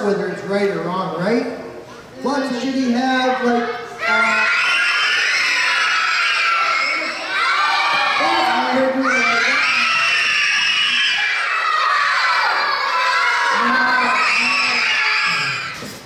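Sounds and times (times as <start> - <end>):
children shouting: 3.4 - 16.0.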